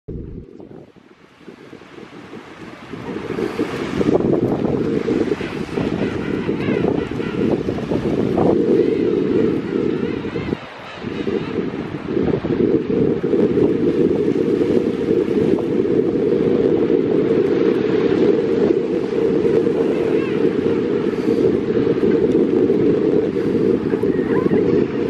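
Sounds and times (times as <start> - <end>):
surf on a beach: 0.1 - 25.0
wind buffeting microphone: 0.1 - 25.0.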